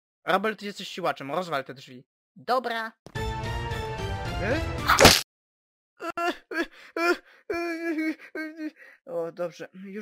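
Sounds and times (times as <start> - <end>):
cartoon dog wailing and sobbing: 6.0 - 8.7.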